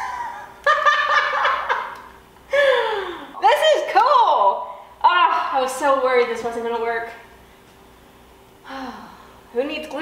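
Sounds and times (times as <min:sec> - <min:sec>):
woman laughing: 0:00.0 - 0:03.2.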